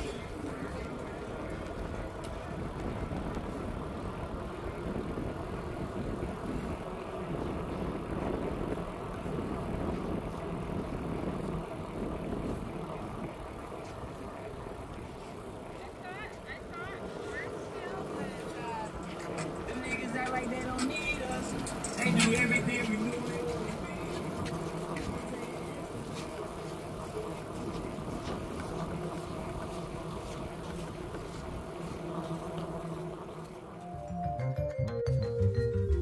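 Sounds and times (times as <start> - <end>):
outdoor noise: 0.0 - 36.0
background voices: 15.2 - 33.8.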